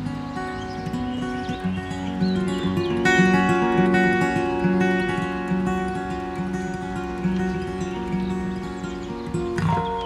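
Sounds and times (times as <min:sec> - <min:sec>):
acoustic guitar playing: 0:00.0 - 0:10.0
faint bird chirps: 0:00.0 - 0:10.0.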